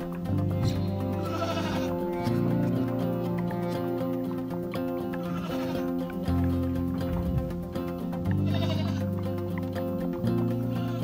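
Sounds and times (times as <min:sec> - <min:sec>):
background music: 0:00.0 - 0:11.0
goats bleating: 0:00.4 - 0:06.3, 0:08.2 - 0:09.5, 0:10.3 - 0:11.0.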